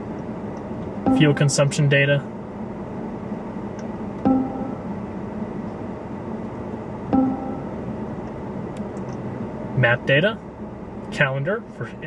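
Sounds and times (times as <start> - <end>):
steady background hum: 0.0 - 12.0
electronic confirmation beeps: 1.1 - 1.6, 4.3 - 4.9, 7.2 - 7.8.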